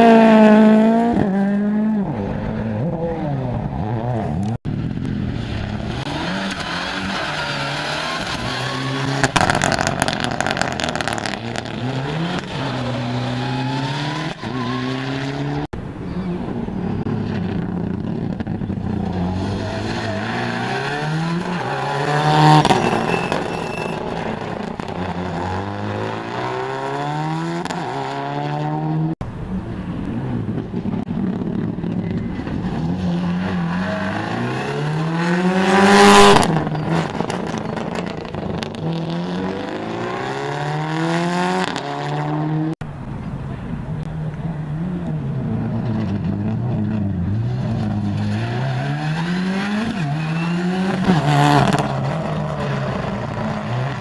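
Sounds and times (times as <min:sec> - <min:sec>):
rally cars revving past: 0:00.0 - 0:04.5, 0:05.3 - 0:29.2, 0:32.4 - 0:42.8, 0:44.7 - 0:54.0.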